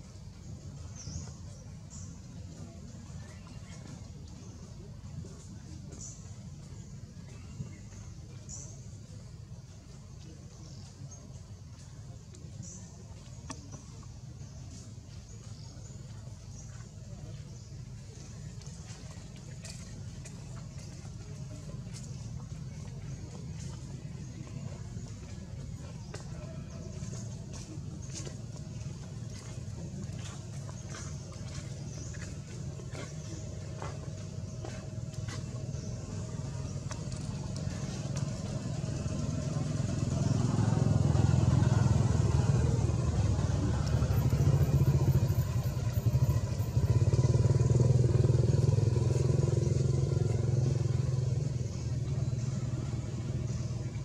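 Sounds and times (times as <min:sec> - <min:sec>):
vehicle engine humming: 0:00.0 - 0:54.0.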